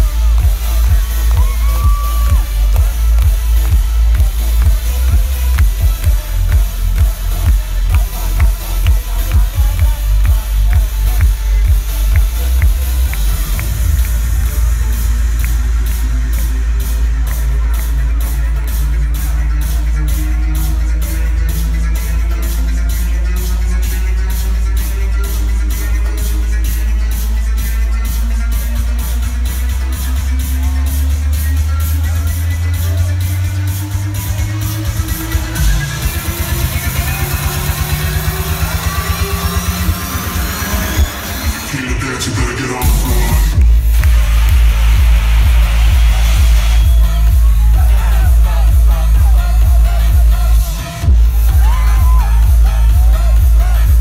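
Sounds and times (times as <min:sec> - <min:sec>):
electronic dance music: 0:00.0 - 0:54.0.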